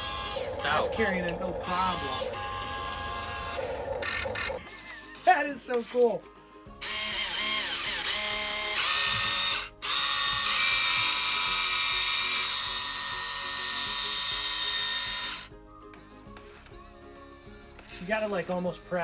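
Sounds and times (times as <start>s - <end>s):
electric motors whining: 0.0s - 5.0s, 6.7s - 19.0s.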